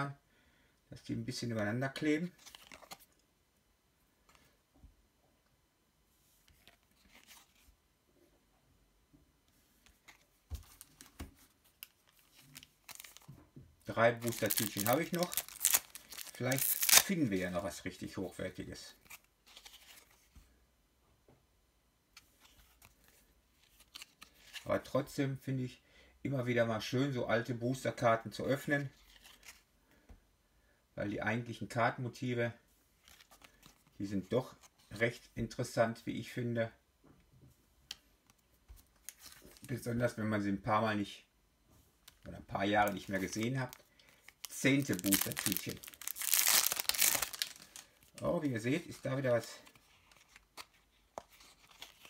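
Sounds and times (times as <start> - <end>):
trading cards rustling: 2.3 - 3.1, 9.9 - 13.3, 13.9 - 17.4, 42.1 - 52.0.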